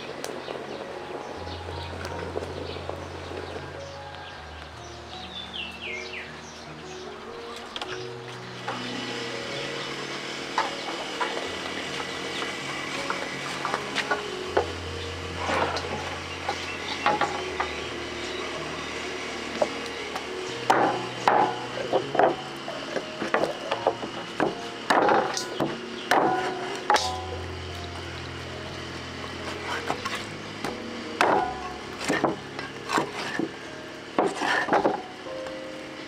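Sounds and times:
soft background music: 0:00.0 - 0:36.0
cleaver chopping on wooden block: 0:24.4 - 0:27.2.

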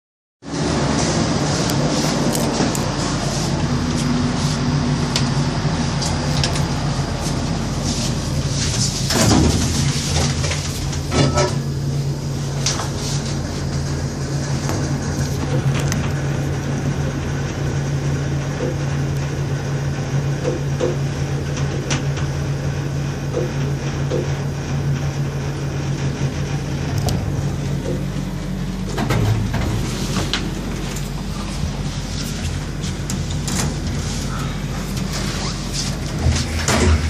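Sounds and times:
elevator low hum: 0:00.4 - 0:37.0
elevator doors sliding shut: 0:07.8 - 0:19.0, 0:25.0 - 0:37.0.

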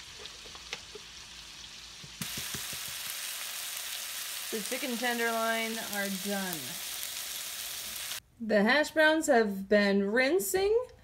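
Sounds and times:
chicken sizzling in a skillet: 0:00.0 - 0:08.2.

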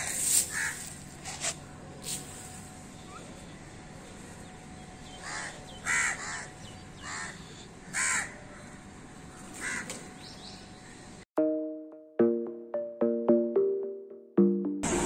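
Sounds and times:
crows cawing: 0:00.5 - 0:00.9, 0:05.2 - 0:08.8, 0:09.5 - 0:10.0.

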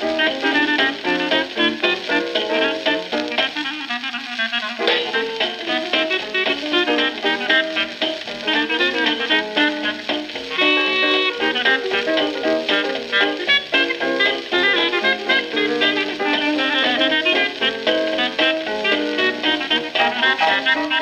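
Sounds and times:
hot jazz trio on a record: 0:00.0 - 0:21.0.

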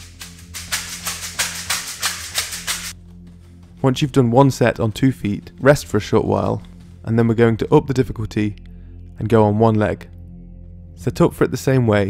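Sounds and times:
hand-held shakers rattling: 0:00.0 - 0:03.0
soft background music: 0:00.0 - 0:12.0.

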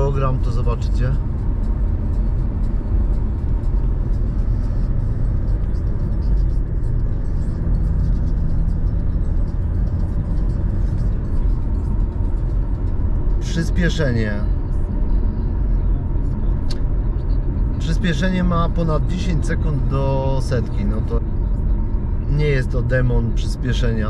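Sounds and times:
car engine cruising: 0:00.0 - 0:24.0
tyres rumbling on road: 0:00.0 - 0:24.0.

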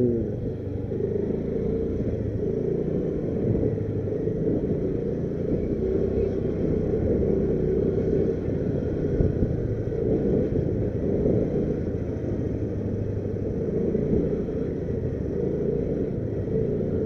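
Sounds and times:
motorcycle engine running: 0:00.0 - 0:17.0
steady low rumble: 0:00.0 - 0:17.0.

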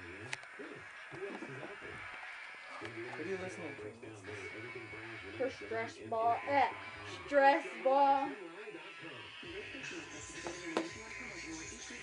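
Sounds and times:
quiet talking: 0:00.0 - 0:12.0.

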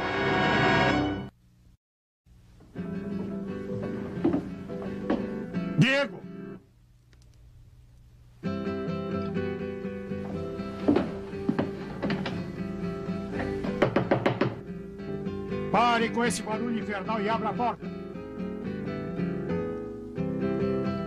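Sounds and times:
knocks on wooden door: 0:13.7 - 0:14.6.

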